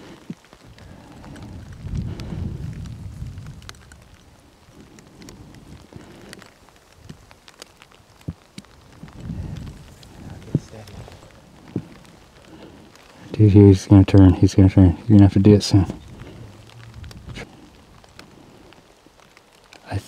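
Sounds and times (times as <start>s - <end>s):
faint ticks and taps: 0.0s - 13.4s, 14.0s - 20.0s
wind buffeting microphone: 0.0s - 19.6s.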